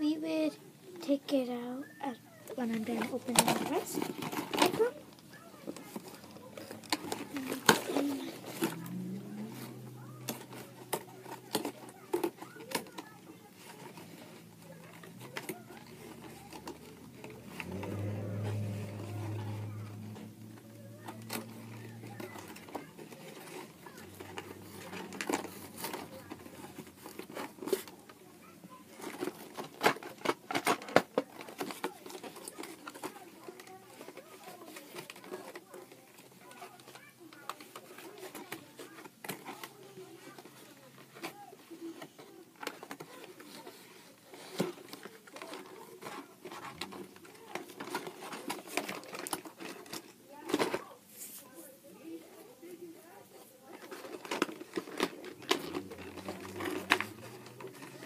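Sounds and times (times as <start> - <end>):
plastic and cardboard crinkling: 0.0 - 58.0.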